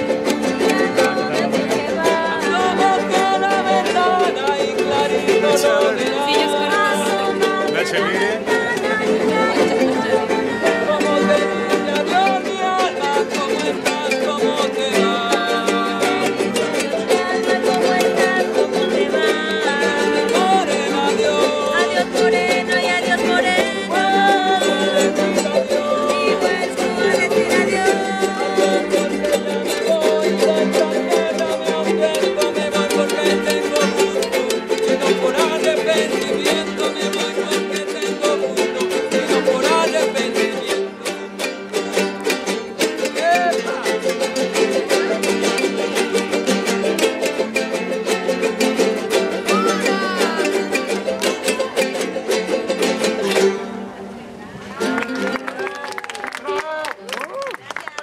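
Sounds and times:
person singing: 0.0s - 53.7s
ukuleles strumming festive music: 0.0s - 58.0s.

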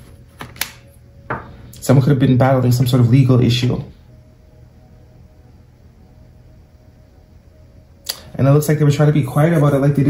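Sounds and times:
background hiss: 0.0s - 10.0s
faint low hum: 0.0s - 10.0s.

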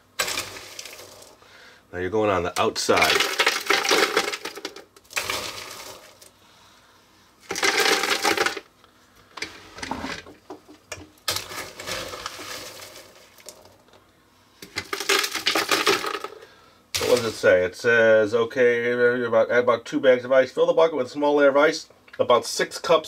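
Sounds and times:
ice cubes clattering in canister: 0.1s - 1.4s, 2.6s - 6.3s, 7.4s - 8.7s, 11.3s - 13.8s, 14.6s - 17.4s.

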